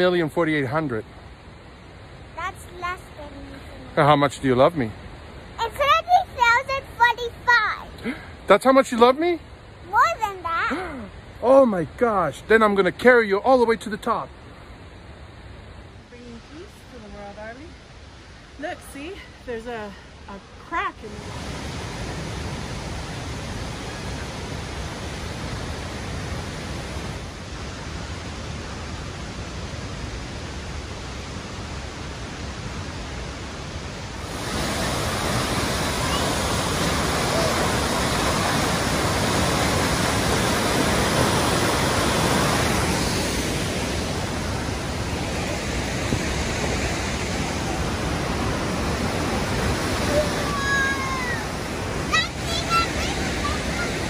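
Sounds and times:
waterfall rushing: 0:00.0 - 0:54.0.

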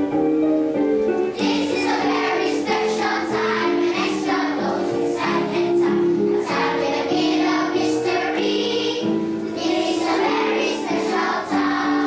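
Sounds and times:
instrumental accompaniment: 0:00.0 - 0:12.0
children's choir singing: 0:01.3 - 0:12.0.

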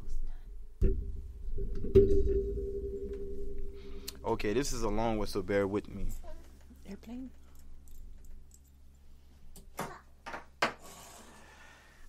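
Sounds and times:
steady low hum: 0:00.0 - 0:09.8.

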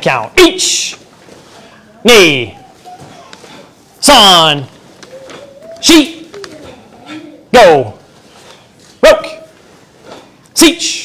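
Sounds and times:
person shouting counts: 0:02.0 - 0:02.6, 0:04.0 - 0:08.0.

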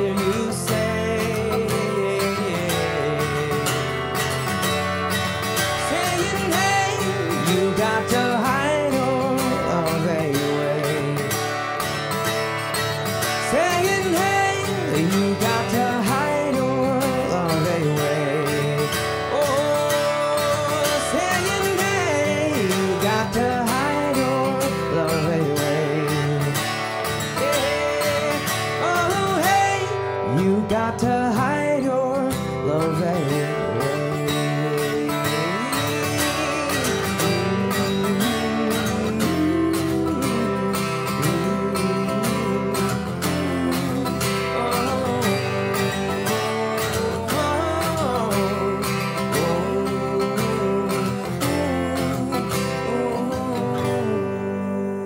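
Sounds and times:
man singing: 0:00.0 - 0:55.0
strummed acoustic guitar: 0:00.0 - 0:55.0.

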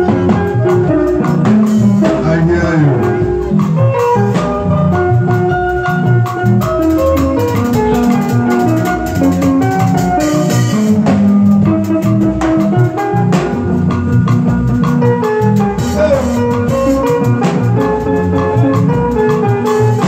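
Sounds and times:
drum kit beat: 0:00.0 - 0:20.0
electronic keyboard melody: 0:00.0 - 0:20.0.

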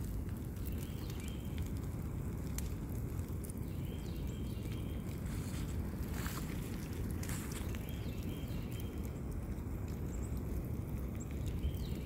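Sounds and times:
fire crackles: 0:00.0 - 0:12.0
fire rumbling: 0:00.0 - 0:12.0.

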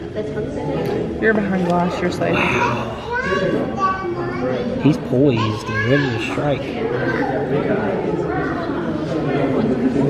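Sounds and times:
children talking and calling out: 0:00.0 - 0:10.0
man speaking: 0:02.3 - 0:03.1, 0:04.8 - 0:06.7.

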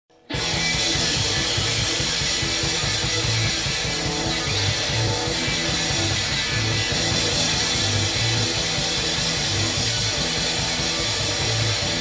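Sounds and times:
electric guitars: 0:00.1 - 0:12.0
drum kit with cymbals: 0:00.2 - 0:12.0.

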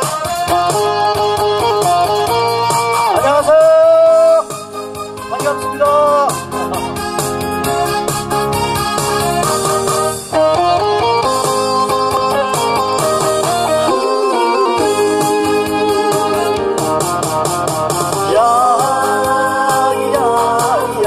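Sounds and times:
instrumental backing track over speakers: 0:00.0 - 0:21.0.

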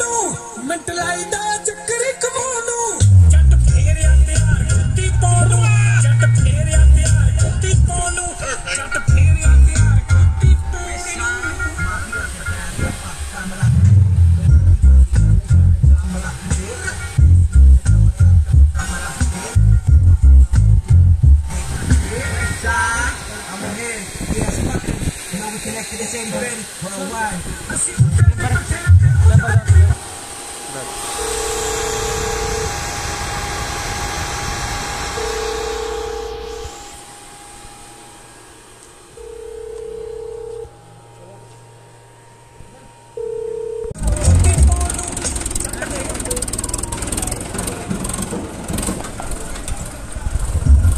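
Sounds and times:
bass-heavy music on sound system: 0:00.0 - 0:30.0, 0:40.6 - 0:48.3, 0:50.3 - 0:50.9
steady high tone: 0:00.0 - 0:48.2
loud bass thumps: 0:13.8 - 0:16.1.

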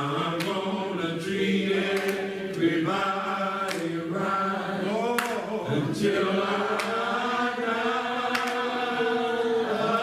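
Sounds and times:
voices singing a slow hymn: 0:00.0 - 0:10.0.

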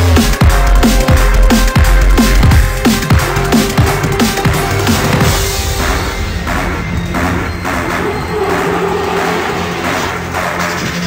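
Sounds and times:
drum and bass music: 0:00.0 - 0:11.0.

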